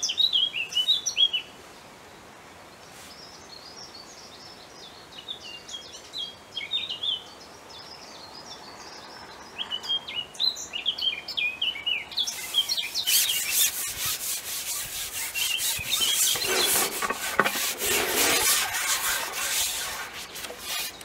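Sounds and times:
small birds chirping: 3.1s - 21.0s
fishing pole scraping through hands: 12.3s - 21.0s.

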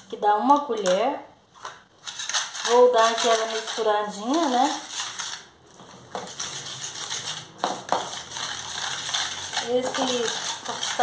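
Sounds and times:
whisk scraping metal bowl: 2.0s - 11.0s.

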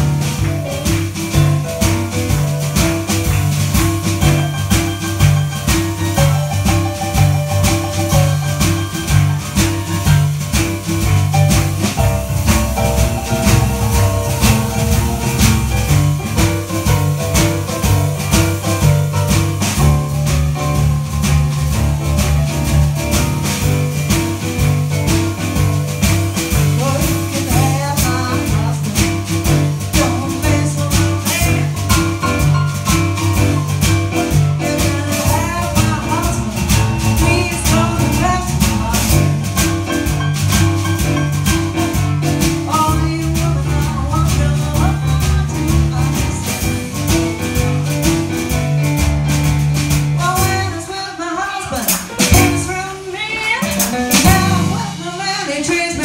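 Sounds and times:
boogie-woogie piano: 0.0s - 56.0s
drums keeping time: 0.0s - 56.0s.

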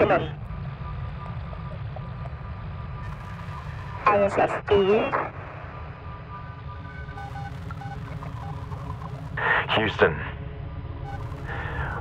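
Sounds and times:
faint steady tones: 0.0s - 12.0s
low rumble: 0.0s - 12.0s
radio static hiss: 3.0s - 5.8s, 11.1s - 12.0s.

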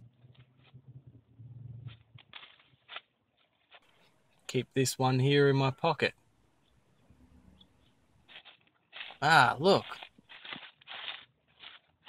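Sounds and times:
leaves rustling: 1.9s - 4.5s, 7.8s - 12.0s.

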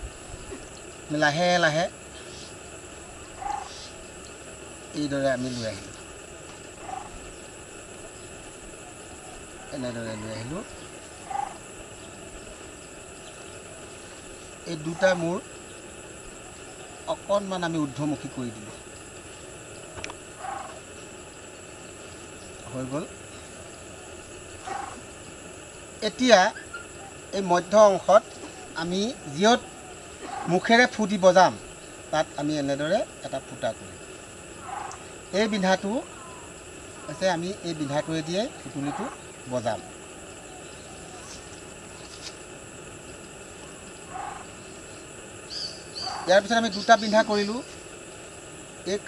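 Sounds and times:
faint outdoor background: 0.0s - 49.0s.

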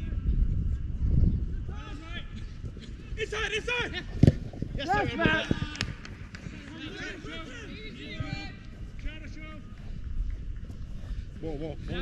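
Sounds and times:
distant players shouting: 1.7s - 9.8s.

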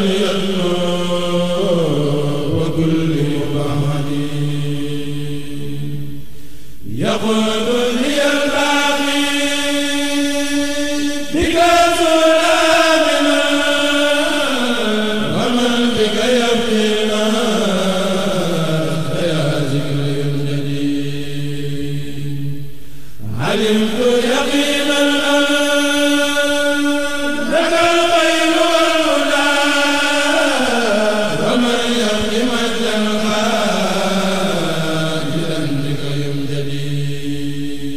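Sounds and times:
man chanting: 0.0s - 6.2s, 6.8s - 22.6s, 23.2s - 37.9s.

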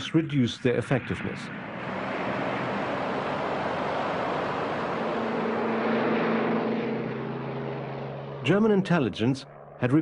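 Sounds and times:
propeller aircraft engines droning: 0.0s - 10.0s.

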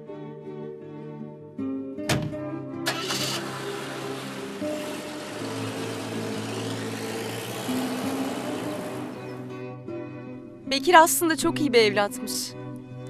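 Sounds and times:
background music: 0.0s - 13.0s
car door shutting: 2.1s - 3.5s
car engine starting and running: 2.9s - 9.9s.

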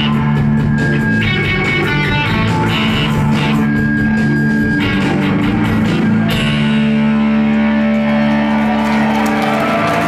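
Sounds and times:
electric guitar feedback: 0.0s - 10.0s.

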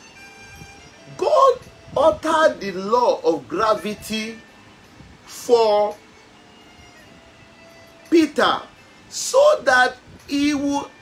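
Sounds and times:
faint room hiss: 0.0s - 11.0s
faint steady held tones: 0.0s - 11.0s.

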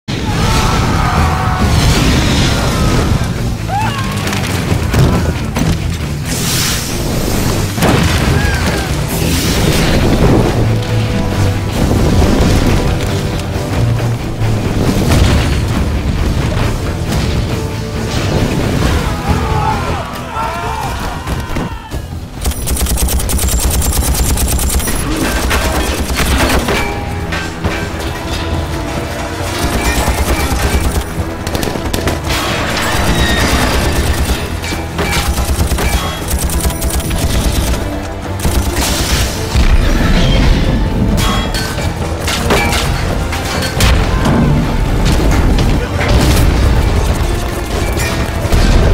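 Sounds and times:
explosions: 0.1s - 3.6s, 4.2s - 13.4s, 14.6s - 19.3s, 43.8s - 48.9s
explosion and fire rumble: 0.1s - 22.5s, 23.6s - 48.9s
orchestral film score: 0.1s - 48.9s
metal and debris crashing: 23.4s - 48.9s.

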